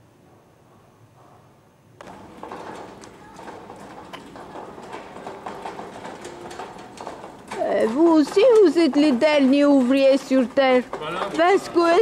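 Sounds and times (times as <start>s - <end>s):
footsteps on cobbles: 2.0s - 12.0s
hand trolley rattling on cobblestones: 2.0s - 12.0s.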